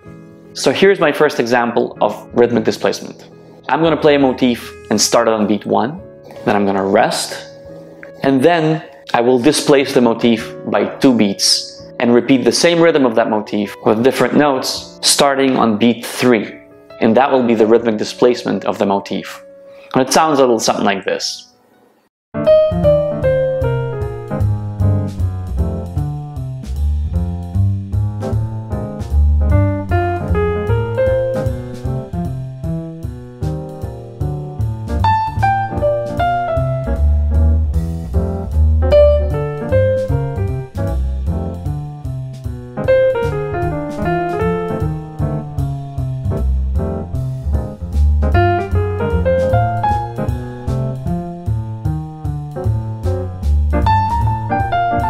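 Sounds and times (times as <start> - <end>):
jazz piano phrases: 0.0 - 21.0, 22.3 - 55.0
bass line: 22.4 - 55.0
light drum beat: 22.8 - 55.0.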